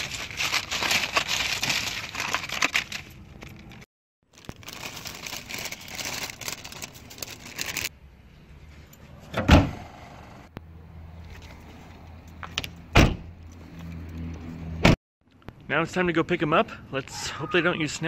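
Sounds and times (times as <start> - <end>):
wrapping paper crinkling: 0.0 - 7.9.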